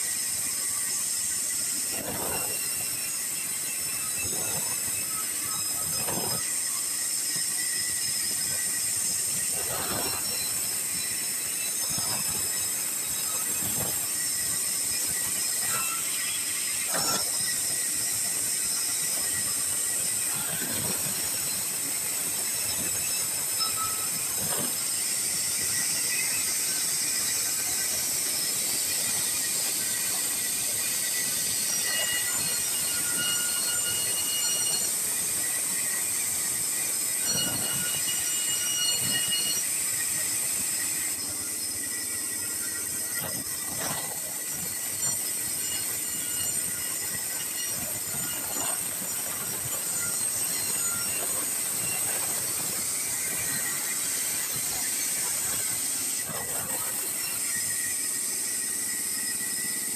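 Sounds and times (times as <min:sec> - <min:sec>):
band saw blade whine: 0:00.0 - 0:59.9
saw cutting wood hiss: 0:00.0 - 0:59.9
saw squeals: 0:00.0 - 0:59.9.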